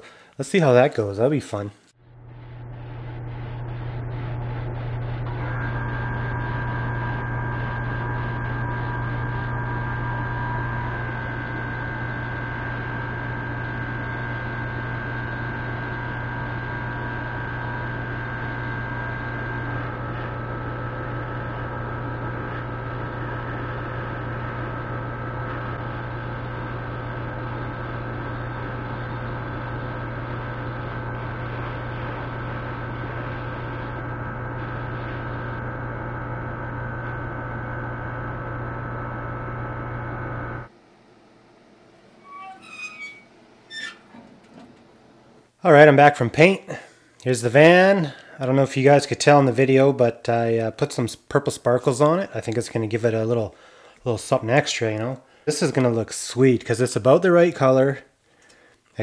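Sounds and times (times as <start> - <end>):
exhaust fan humming: 0.0 - 59.0.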